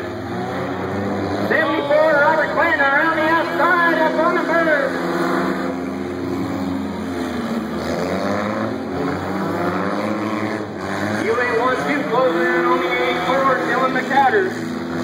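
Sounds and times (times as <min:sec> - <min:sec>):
race car engines droning: 0:00.0 - 0:15.0.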